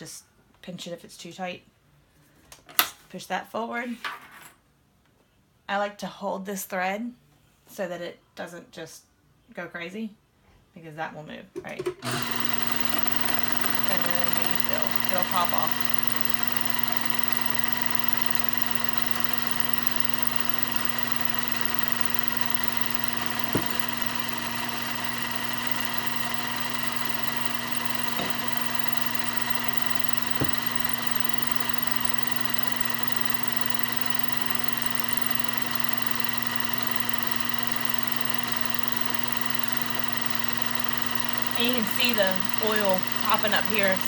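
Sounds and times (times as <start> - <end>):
sewing machine motor whine: 12.0 - 44.0.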